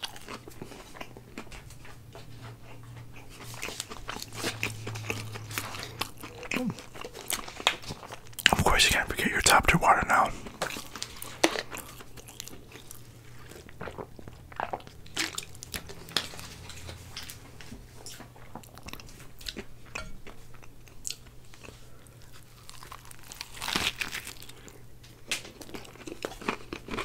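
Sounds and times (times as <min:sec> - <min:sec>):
chewing and crunching food: 0:00.0 - 0:27.0.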